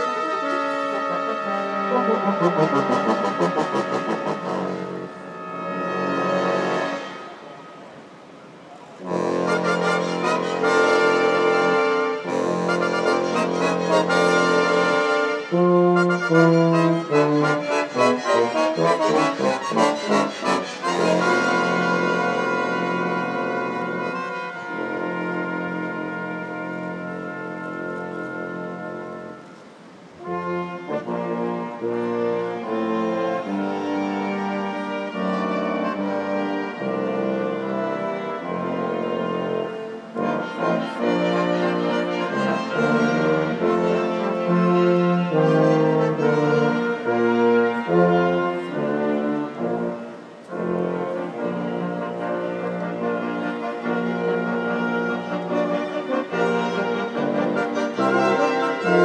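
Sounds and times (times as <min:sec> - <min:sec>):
brass ensemble playing anthem: 0:00.0 - 0:08.4, 0:09.0 - 0:59.0.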